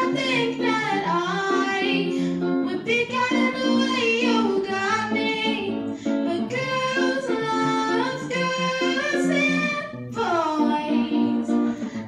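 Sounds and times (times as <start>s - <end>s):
electric guitar chords: 0.0s - 12.0s
woman singing pop song: 0.0s - 12.0s.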